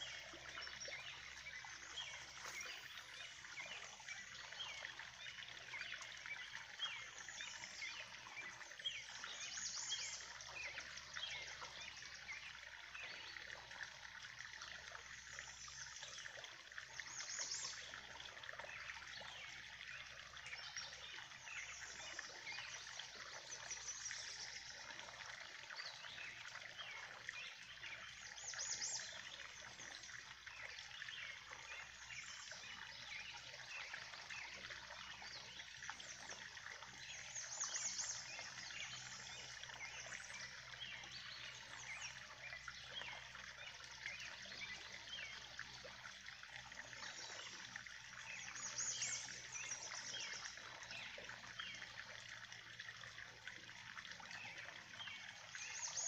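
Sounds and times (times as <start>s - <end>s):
water trickling into pond: 0.0s - 56.0s.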